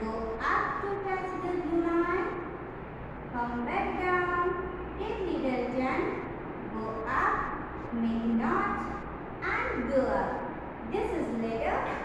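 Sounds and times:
woman speaking slowly: 0.0s - 2.4s, 3.3s - 12.0s.

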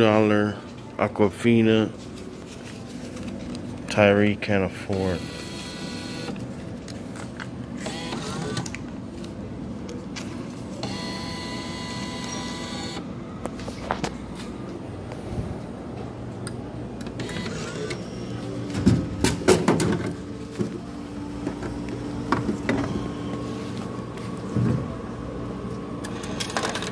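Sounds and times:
vending machine whirring: 0.0s - 26.9s
bill acceptor motor whirring: 5.0s - 6.4s, 7.8s - 8.8s, 10.8s - 13.1s, 17.0s - 18.6s.

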